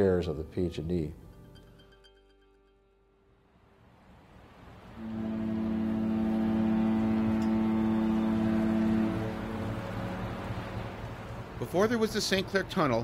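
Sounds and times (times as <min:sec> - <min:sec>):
long horn blast: 0:05.0 - 0:12.1.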